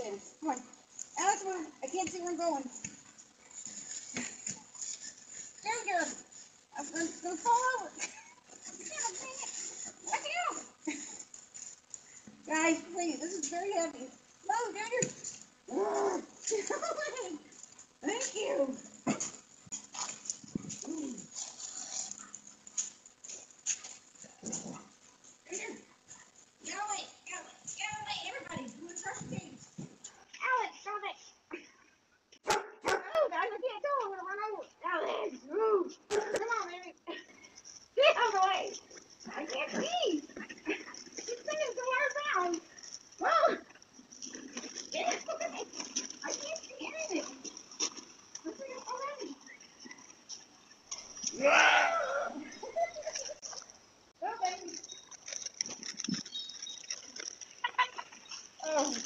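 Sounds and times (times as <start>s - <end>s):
animals crying: 51.2s - 53.1s.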